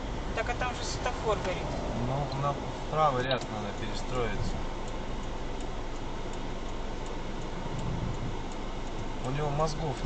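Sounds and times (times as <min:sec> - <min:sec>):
car engine and road noise: 0:00.0 - 0:10.0
turn signal ticking: 0:00.0 - 0:10.0.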